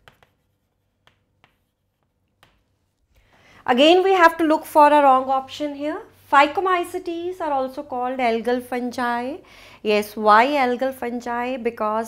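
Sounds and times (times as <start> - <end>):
chalk tapping on blackboard: 0.0 - 2.9.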